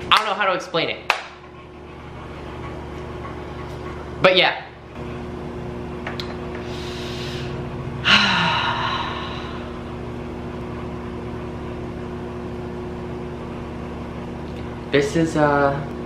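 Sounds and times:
microwave oven humming: 0:00.0 - 0:16.0
person breathing in: 0:06.6 - 0:09.8
person sighing: 0:06.8 - 0:09.8.

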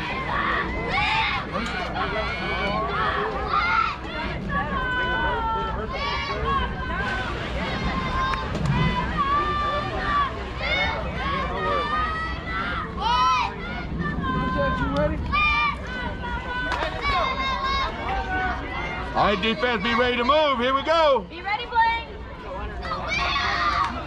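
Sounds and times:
crowd voices calling and chattering: 0:00.0 - 0:24.0.

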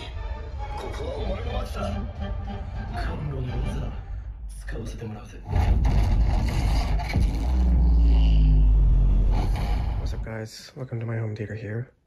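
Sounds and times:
deep bass rumble: 0:01.2 - 0:10.3.

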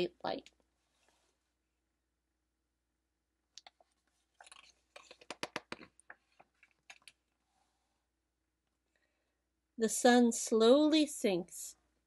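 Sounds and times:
paper crackles and taps: 0:03.6 - 0:07.2
book pages turning: 0:03.6 - 0:07.3.

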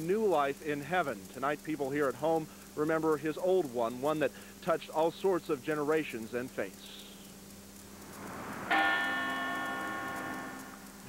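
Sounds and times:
soft background rush: 0:00.3 - 0:11.0
church bell tolling: 0:08.7 - 0:10.8.

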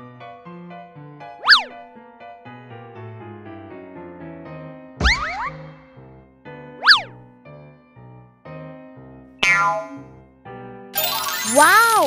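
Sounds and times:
whistle-like glide: 0:01.4 - 0:01.8, 0:06.8 - 0:07.1
pop with falling tones: 0:05.0 - 0:05.8, 0:09.4 - 0:10.2
bouncy children's music: 0:11.0 - 0:12.0.

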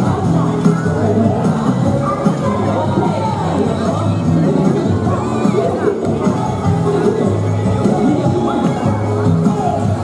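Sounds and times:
crowd cheering and calling out: 0:00.0 - 0:10.0
upbeat music over loudspeakers: 0:00.0 - 0:10.0.

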